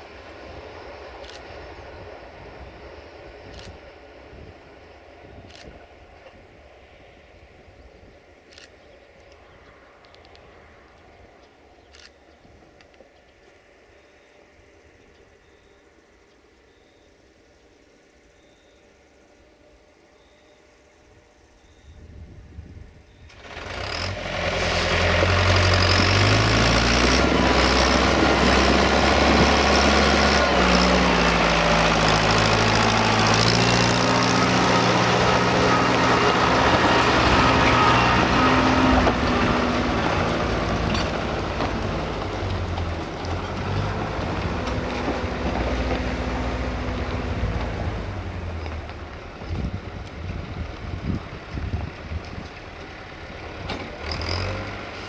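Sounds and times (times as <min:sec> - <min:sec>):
tractor engine passing: 0:23.3 - 0:55.0.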